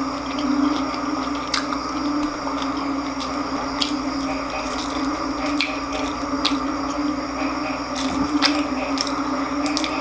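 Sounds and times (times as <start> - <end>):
chewing crispy fried food: 0.0 - 10.0
sharp crunches: 0.0 - 10.0
steady low hum: 0.0 - 10.0.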